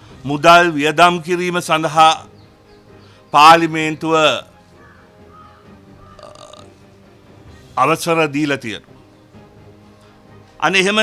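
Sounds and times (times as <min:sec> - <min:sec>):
faint background music: 0:00.0 - 0:11.0
man speaking: 0:10.6 - 0:11.0.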